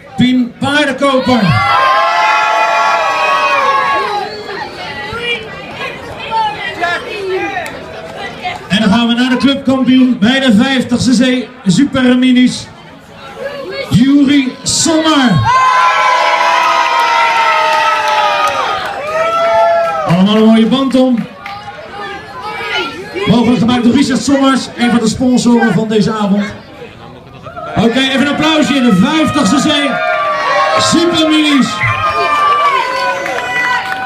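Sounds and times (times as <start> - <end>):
crowd chatter: 0.0 - 34.0
children cheering: 1.3 - 5.5, 14.2 - 20.3, 27.4 - 34.0.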